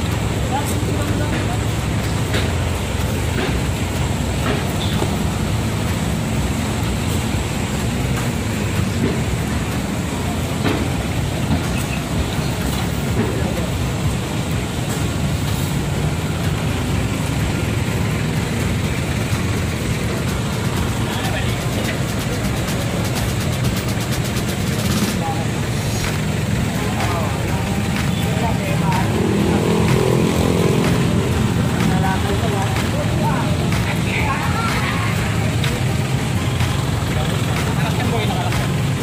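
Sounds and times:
people talking: 0.0s - 39.0s
vehicle engine rumbling: 0.0s - 39.0s.

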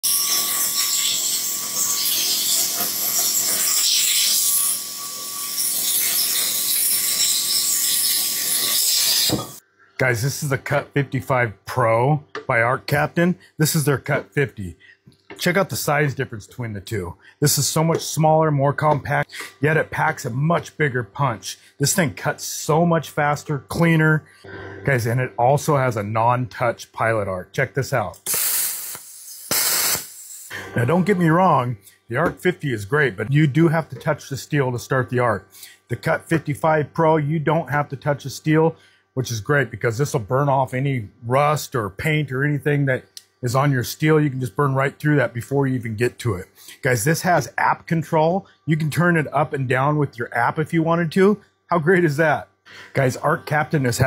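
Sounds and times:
plasma cutter hissing: 0.1s - 4.5s, 5.8s - 9.6s, 28.2s - 30.8s.

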